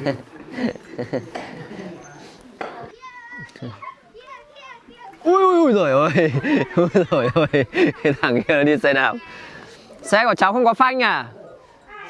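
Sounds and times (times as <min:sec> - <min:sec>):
children crying out in play: 0:01.9 - 0:06.2, 0:11.5 - 0:12.0.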